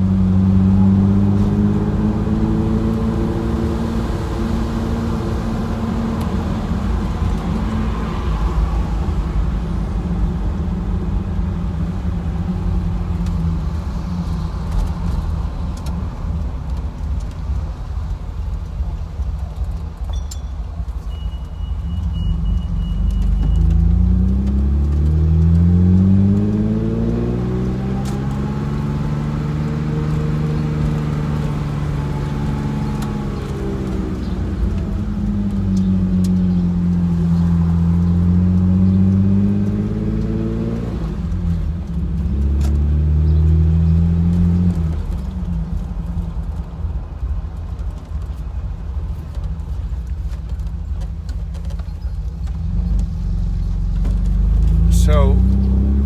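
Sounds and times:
car engine from inside cabin: 0:00.0 - 0:56.0
wind and road noise: 0:00.0 - 0:56.0.

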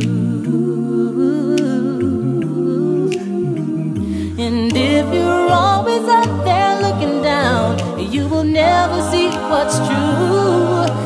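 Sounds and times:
voices humming in harmony: 0:00.0 - 0:11.0.

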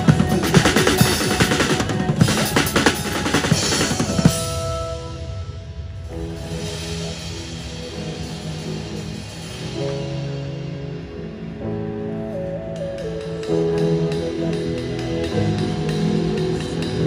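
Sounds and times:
backing music chords: 0:00.0 - 0:17.0.

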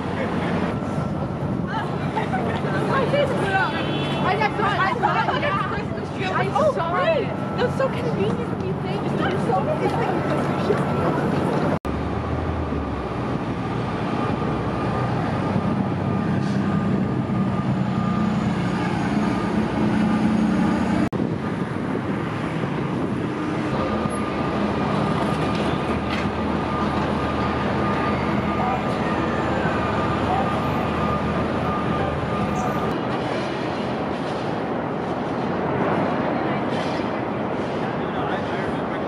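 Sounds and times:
low traffic rumble: 0:00.0 - 0:39.0.

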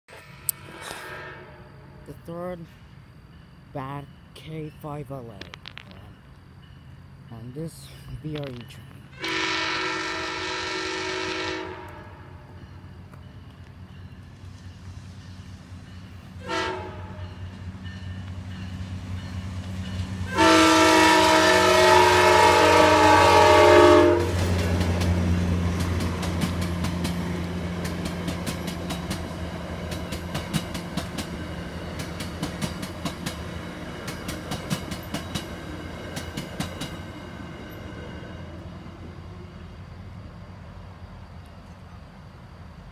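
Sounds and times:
train air horn blasts: 0:00.5 - 0:02.0, 0:09.2 - 0:12.5, 0:16.4 - 0:17.3, 0:20.2 - 0:24.4
train wheels clickety-clack: 0:24.3 - 0:37.1.

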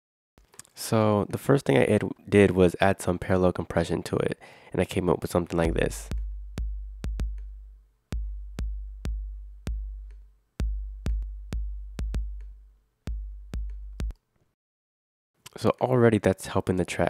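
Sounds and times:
drum machine kick drum: 0:05.6 - 0:14.1.

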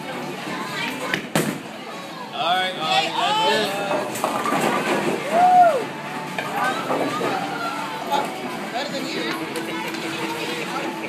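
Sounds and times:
bowling alley background noise: 0:00.0 - 0:11.0.

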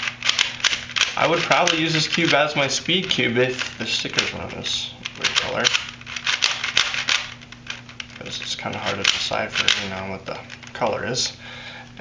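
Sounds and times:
plastic puzzle cube clicking: 0:00.0 - 0:02.6, 0:05.0 - 0:10.8.

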